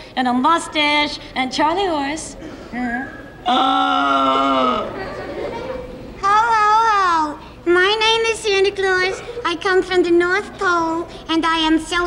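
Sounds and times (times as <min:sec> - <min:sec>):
broken vocal sounds: 0:02.8 - 0:05.0
character voice holding a long note: 0:03.5 - 0:04.9.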